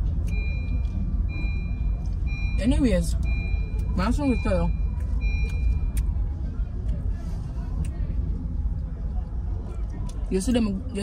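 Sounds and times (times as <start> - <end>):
car rumble in traffic: 0.0 - 11.0
high electronic beeps: 0.3 - 5.9.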